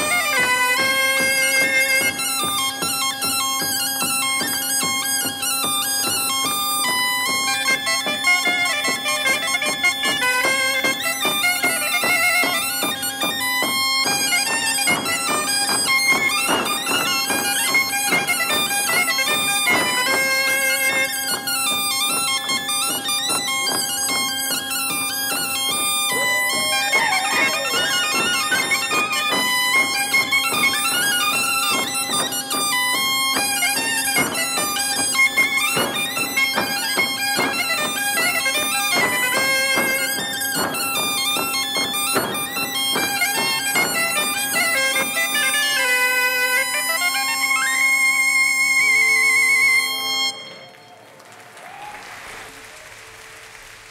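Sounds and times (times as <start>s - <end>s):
traditional dance music ensemble: 0.0s - 53.9s
audience applause: 26.1s - 28.6s, 50.6s - 53.9s.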